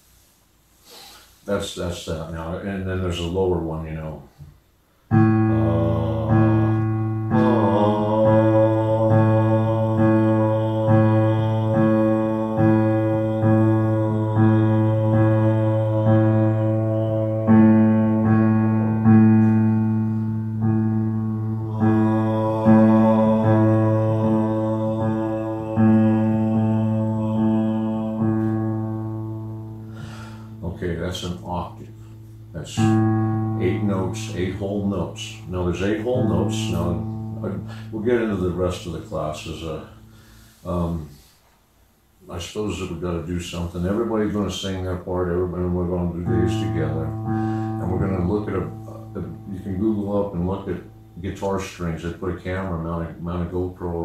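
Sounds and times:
electric keyboard low note: 0:05.1 - 0:41.0, 0:46.0 - 0:52.0
sung held tone: 0:05.1 - 0:41.0, 0:45.7 - 0:52.8.

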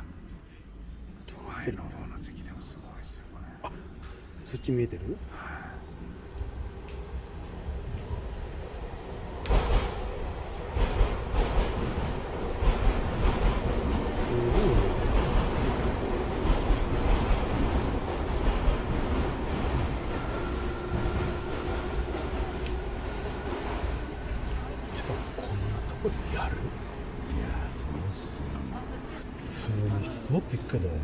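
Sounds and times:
train rumbling past: 0:03.2 - 0:31.0
sharp knocks of train wheels: 0:09.4 - 0:24.6.

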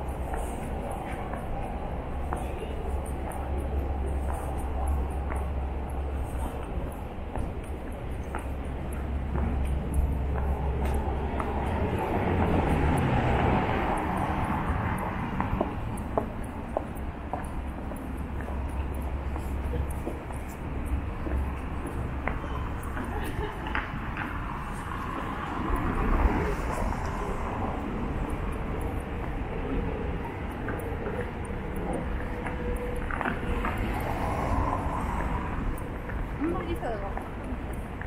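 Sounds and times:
low rumble of passing vehicles: 0:00.0 - 0:38.0.

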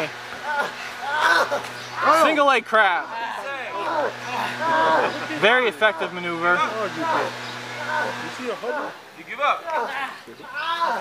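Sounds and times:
indistinct voices talking: 0:00.0 - 0:11.0
steady low hum: 0:00.0 - 0:11.0.

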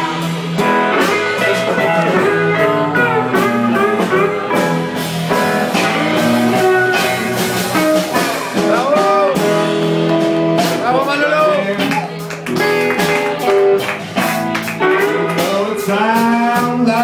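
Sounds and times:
drums: 0:00.0 - 0:17.0
electric guitar with bent notes: 0:00.0 - 0:17.0
second guitar: 0:00.0 - 0:17.0.

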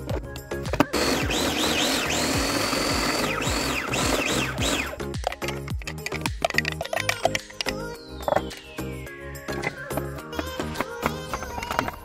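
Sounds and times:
background music: 0:00.0 - 0:12.0
electric food chopper running: 0:00.8 - 0:05.0.

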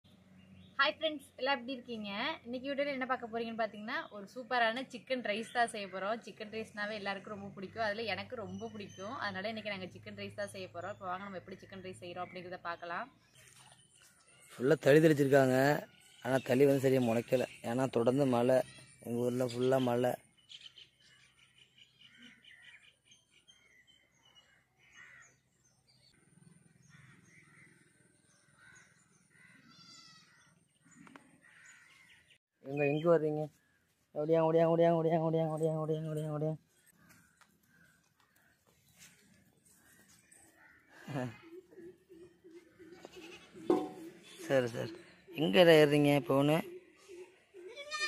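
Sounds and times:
birds chirping: 0:00.0 - 0:48.0
young goat bleating: 0:29.6 - 0:30.4, 0:42.8 - 0:44.1, 0:47.7 - 0:48.0.

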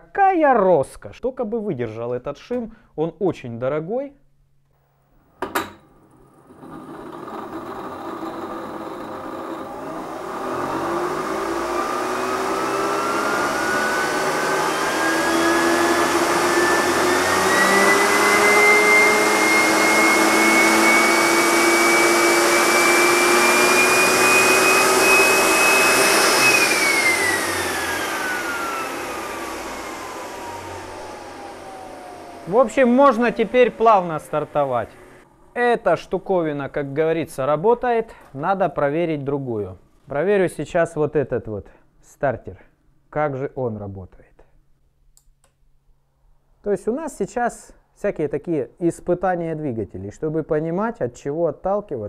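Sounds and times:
starter motor whine: 0:06.0 - 0:35.4
click: 0:45.1 - 0:45.6.

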